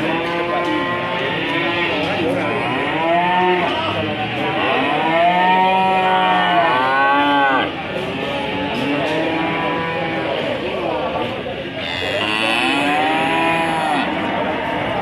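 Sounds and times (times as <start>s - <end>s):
cattle mooing: 11.8s - 14.4s.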